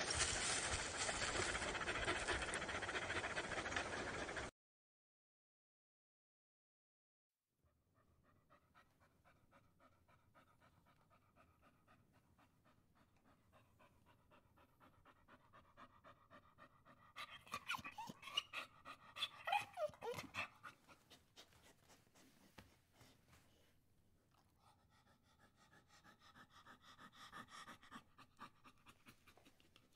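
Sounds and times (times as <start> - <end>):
dog panting: 0.0 - 4.5, 8.0 - 23.7, 24.4 - 29.9
dog whining and whimpering: 17.2 - 21.2.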